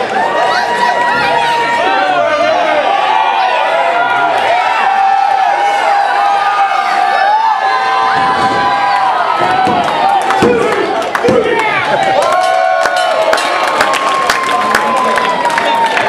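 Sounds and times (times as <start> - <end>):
crowd shouting and cheering: 0.0 - 16.0.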